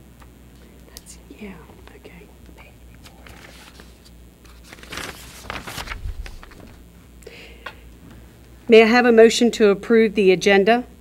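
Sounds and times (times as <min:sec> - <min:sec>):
low room hum: 0:00.0 - 0:11.0
paper handling clicks: 0:03.0 - 0:06.8.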